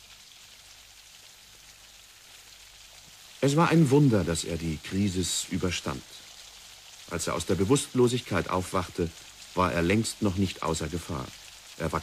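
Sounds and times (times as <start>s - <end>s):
faint steady rain: 0.0s - 12.0s.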